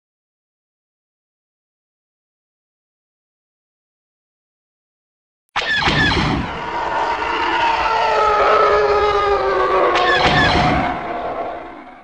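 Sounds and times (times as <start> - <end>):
engine-like rushing roar: 6.4 - 12.0
slowly falling tones: 6.4 - 12.0.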